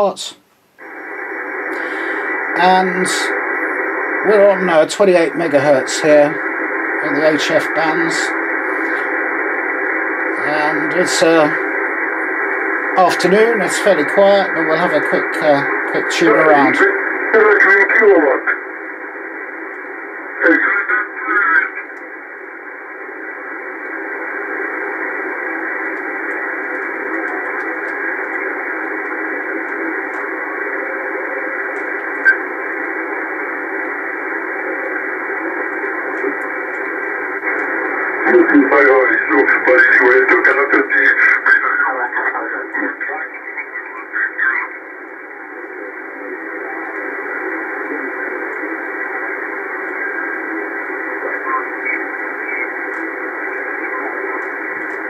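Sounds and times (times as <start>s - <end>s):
person speaking over radio: 0.0s - 0.4s, 1.7s - 12.0s, 12.8s - 18.8s, 20.3s - 22.0s, 34.3s - 55.0s
faint radio signals: 0.0s - 55.0s
shortwave radio band noise hiss: 0.0s - 55.0s.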